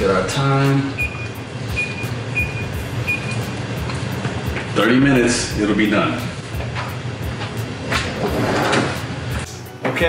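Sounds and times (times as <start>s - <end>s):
background music with steady beat: 0.0s - 10.0s
oven keypad beeps: 1.0s - 3.5s.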